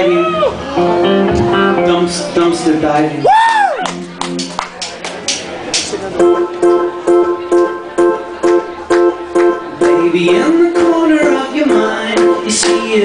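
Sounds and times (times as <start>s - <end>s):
keyboard chords: 0.1s - 3.1s, 3.7s - 13.0s
guitar strumming chords: 0.8s - 2.4s, 3.8s - 4.8s, 6.1s - 13.0s.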